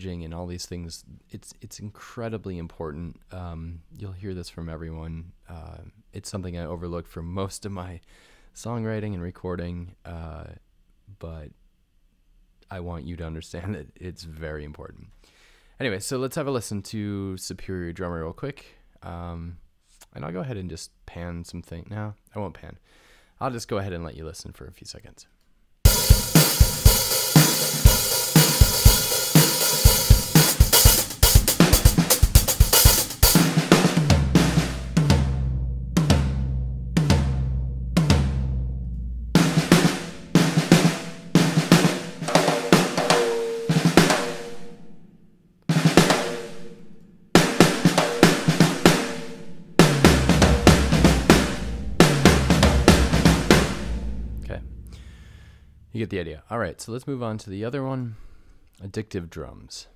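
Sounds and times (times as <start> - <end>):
drum kit grooves and fills: 25.8 - 45.0, 45.7 - 55.9.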